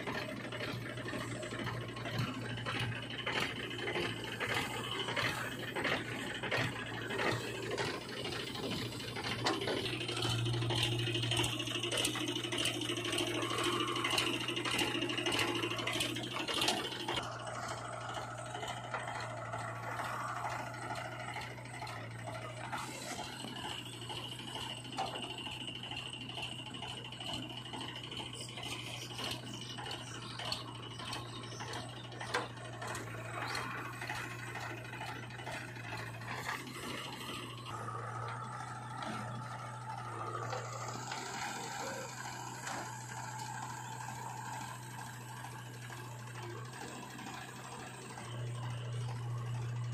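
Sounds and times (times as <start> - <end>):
diesel engine running: 0.0 - 49.9
digger bucket rattling and scraping: 0.0 - 49.9.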